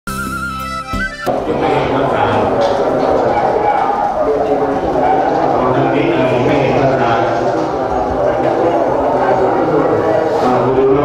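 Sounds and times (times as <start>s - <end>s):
man speaking through microphone: 1.3s - 11.0s.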